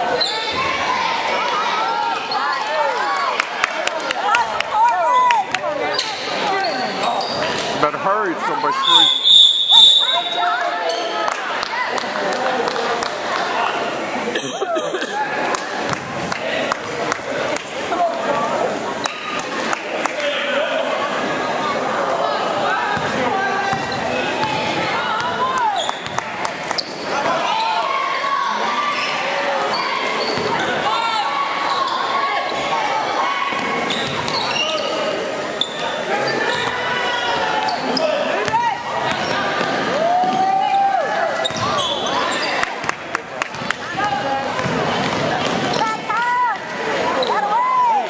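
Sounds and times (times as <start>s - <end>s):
people calling out in a gym: 0.0s - 7.6s, 8.2s - 42.9s, 43.7s - 48.0s.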